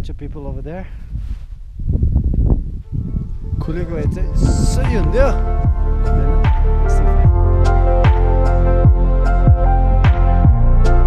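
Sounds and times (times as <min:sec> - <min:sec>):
microphone handling and wind rumble: 0:00.0 - 0:10.9.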